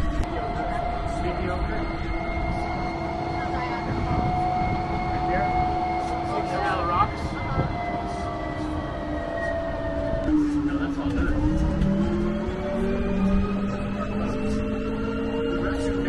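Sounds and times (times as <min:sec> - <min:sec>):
drive whine: 0:00.0 - 0:16.0
vehicle engine rumble: 0:00.0 - 0:16.0.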